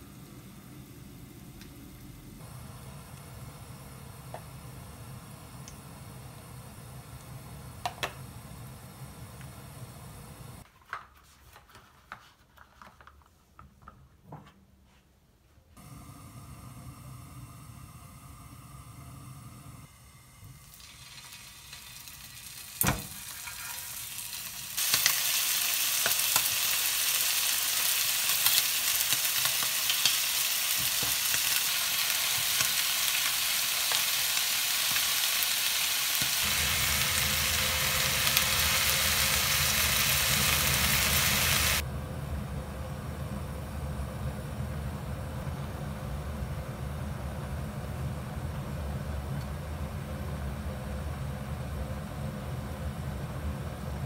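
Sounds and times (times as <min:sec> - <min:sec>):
chicken sizzling in frying pan: 0:20.3 - 0:41.8.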